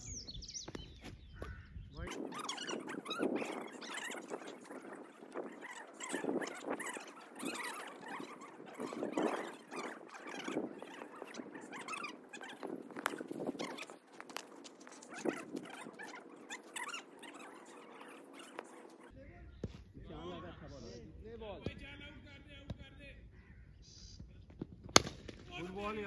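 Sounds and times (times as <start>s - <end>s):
birds chirping and chattering: 0.0s - 21.2s, 23.2s - 24.4s.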